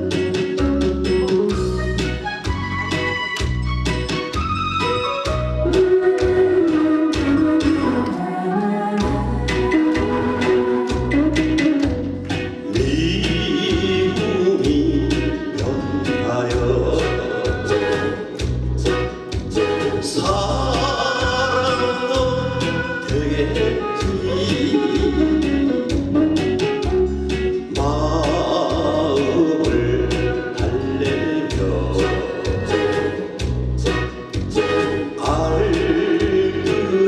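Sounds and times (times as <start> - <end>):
amplified accompaniment: 0.0 - 37.0
steady bass drum beat: 9.0 - 37.0
man singing into a microphone: 12.6 - 25.9, 27.7 - 37.0.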